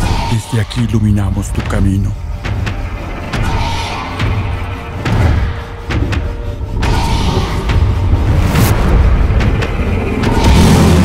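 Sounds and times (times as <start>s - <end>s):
low rumble: 1.2s - 11.0s.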